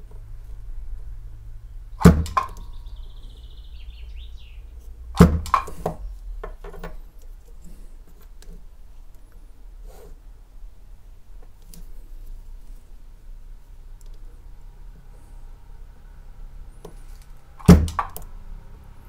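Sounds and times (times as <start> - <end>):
spot welder sharp cracks: 2.0 - 2.6, 5.2 - 6.0, 17.6 - 18.2.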